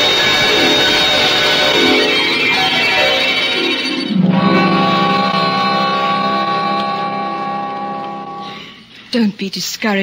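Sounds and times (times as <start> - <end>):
held music chord: 0.0 - 8.8.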